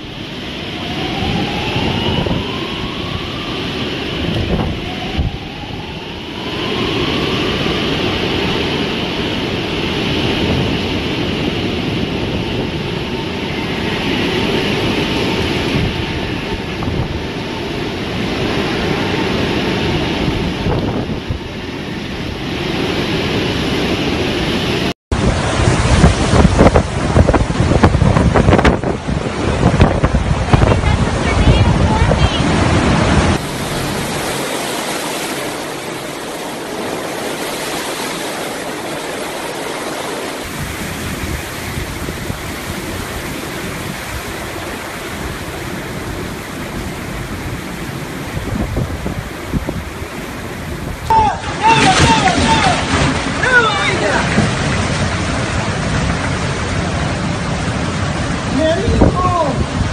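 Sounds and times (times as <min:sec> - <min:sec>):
heavy rain: 0:00.0 - 0:59.9
storm wind buffeting microphone: 0:00.0 - 0:59.9.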